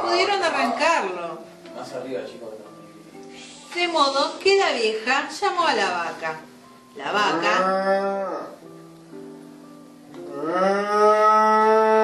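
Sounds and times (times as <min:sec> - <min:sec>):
cow mooing: 0:07.2 - 0:08.6, 0:10.3 - 0:12.0.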